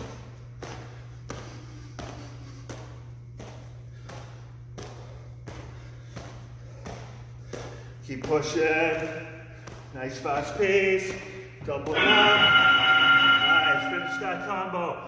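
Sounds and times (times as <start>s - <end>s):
bare feet thudding on gym mat: 0.0s - 12.0s
steady low hum: 0.0s - 15.0s.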